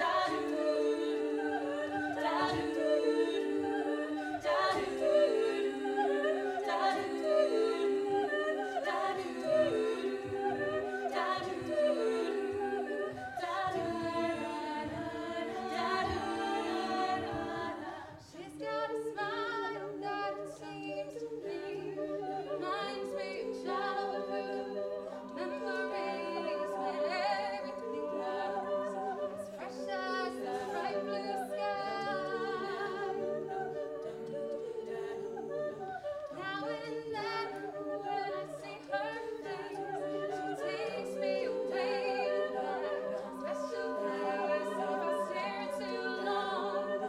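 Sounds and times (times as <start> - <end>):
female a cappella group singing: 0.0 - 47.0.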